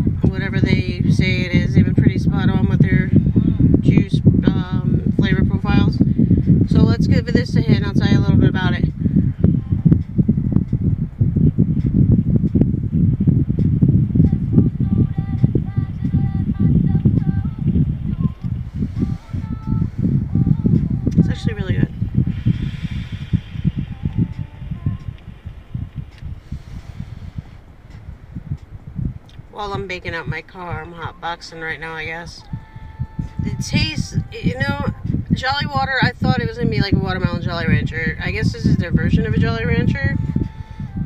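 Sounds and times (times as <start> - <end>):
bass-heavy song from car radio: 0.0 - 41.0.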